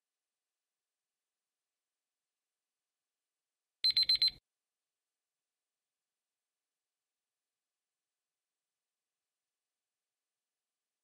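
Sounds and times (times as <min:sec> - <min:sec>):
high-pitched timer beeps: 0:03.8 - 0:04.4.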